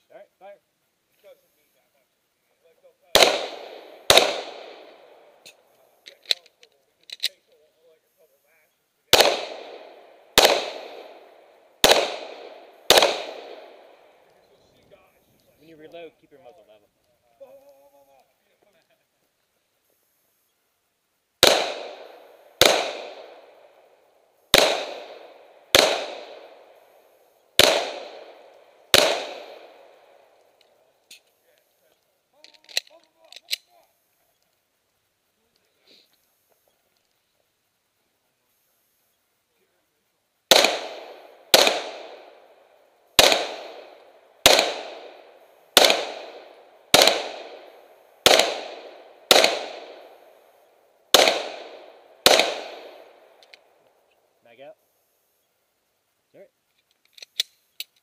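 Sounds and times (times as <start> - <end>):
handgun shots: 3.2 - 5.1, 9.1 - 11.2, 11.8 - 13.8, 21.4 - 23.5, 24.5 - 26.6, 27.6 - 29.9, 40.5 - 42.3, 43.2 - 45.2, 45.8 - 50.1, 51.1 - 53.0.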